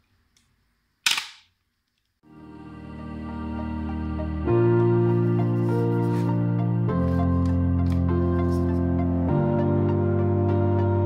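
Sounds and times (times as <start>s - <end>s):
background music: 2.2s - 11.0s.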